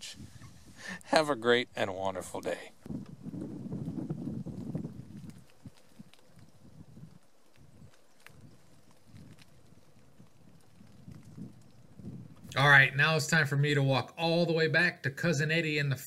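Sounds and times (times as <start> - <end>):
wind rumble on microphone: 0.0 - 1.0, 2.1 - 12.9.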